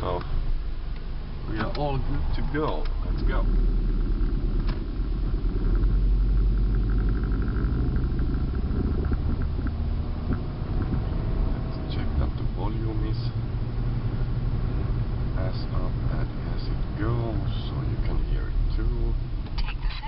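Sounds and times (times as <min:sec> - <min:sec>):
car engine rumble: 0:00.0 - 0:20.0
road noise: 0:00.0 - 0:20.0.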